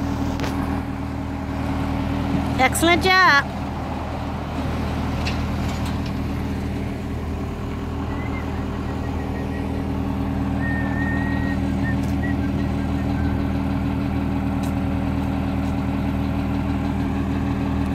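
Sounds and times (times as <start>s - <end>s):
heavy vehicle engine idling: 0.0s - 17.9s.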